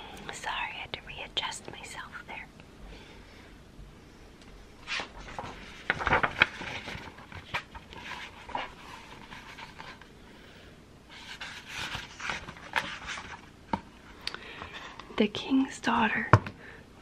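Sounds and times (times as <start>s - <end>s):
soft breathy noises: 0.0s - 4.7s
paper pages rustling: 4.8s - 10.1s, 11.1s - 13.9s.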